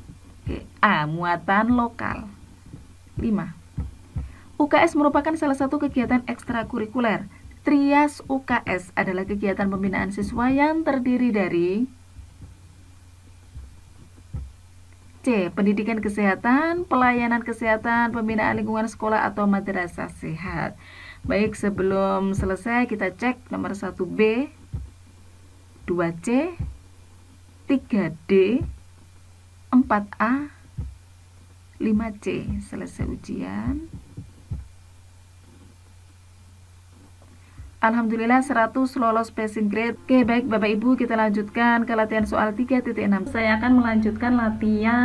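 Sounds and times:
low steady hum: 0.0s - 45.0s
soft low thumps: 0.0s - 45.0s.

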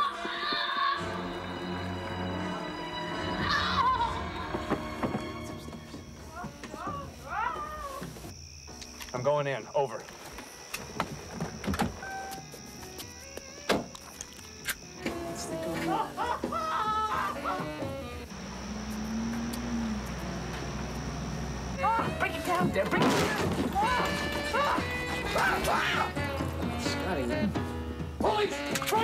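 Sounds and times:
high-pitched insect drone: 9.6s - 15.9s, 18.2s - 22.6s
low hum: 18.3s - 21.8s.

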